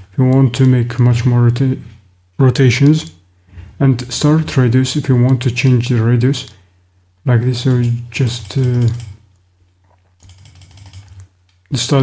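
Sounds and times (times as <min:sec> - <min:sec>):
low steady hum: 0:00.0 - 0:12.0
mouse scroll wheel ticking: 0:08.4 - 0:09.2, 0:10.2 - 0:11.3.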